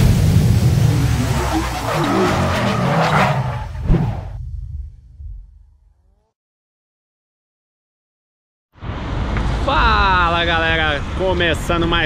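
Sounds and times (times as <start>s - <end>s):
sharp hit: 0.0s - 2.8s
low rumble: 0.0s - 6.3s.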